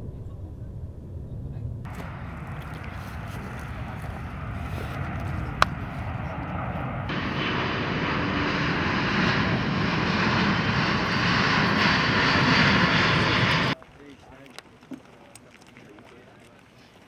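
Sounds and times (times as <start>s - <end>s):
jet aircraft flying overhead: 0.0s - 13.8s.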